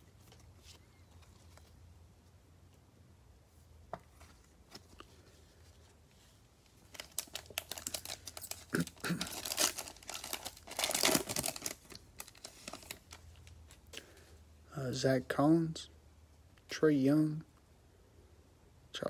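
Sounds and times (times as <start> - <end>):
cellophane wrapper tearing: 6.8 - 13.6.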